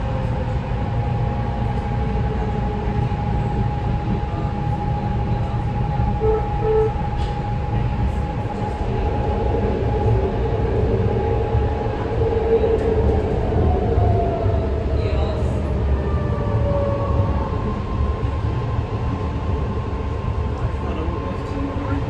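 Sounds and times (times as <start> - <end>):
steady train whine: 0.0 - 22.0
train wheels rumbling on track: 0.0 - 22.0.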